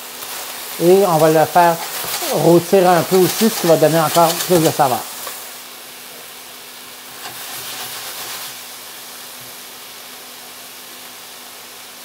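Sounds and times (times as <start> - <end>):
meat and onion sizzling in a pan: 0.0 - 12.0.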